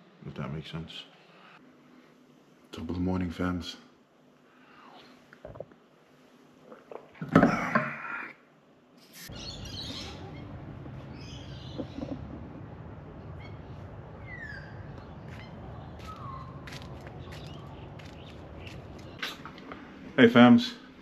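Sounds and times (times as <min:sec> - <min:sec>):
birds chirping: 0:09.3 - 0:20.0
low background rumble: 0:09.4 - 0:20.2.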